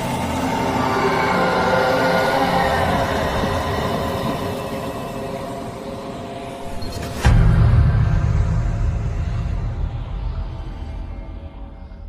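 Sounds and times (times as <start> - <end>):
dense layered drone: 0.0 - 12.0.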